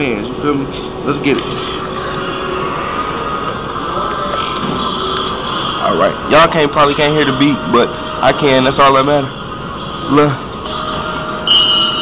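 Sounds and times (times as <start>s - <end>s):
faint steady tones: 0.0s - 12.0s
terminal hum: 0.0s - 12.0s.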